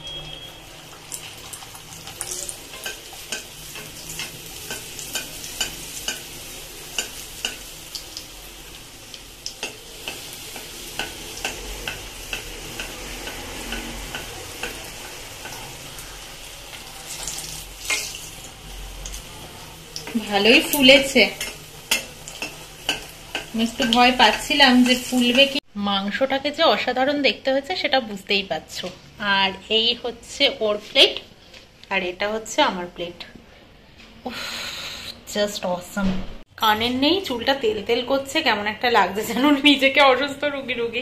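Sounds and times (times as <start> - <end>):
oil sizzling and crackling: 0.0 - 25.7.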